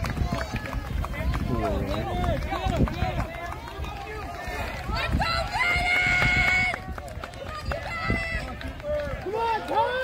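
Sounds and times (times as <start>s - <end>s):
spectators shouting encouragement: 0.2s - 10.0s.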